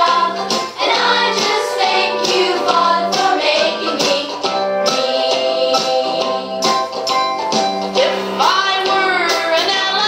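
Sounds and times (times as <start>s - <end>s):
light backing music: 0.0s - 10.0s.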